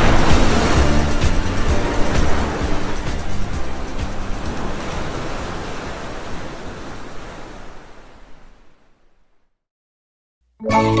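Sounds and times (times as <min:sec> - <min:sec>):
airliner cabin rushing noise: 0:00.0 - 0:05.6.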